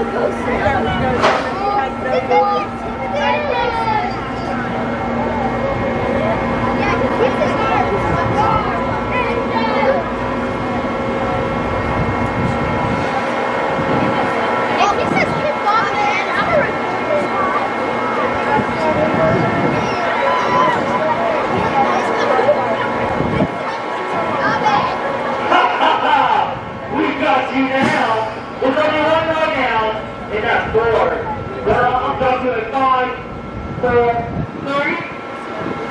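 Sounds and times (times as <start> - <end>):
riders and onlookers voices: 0.0 - 35.9
roller coaster lift whirring: 0.0 - 35.9.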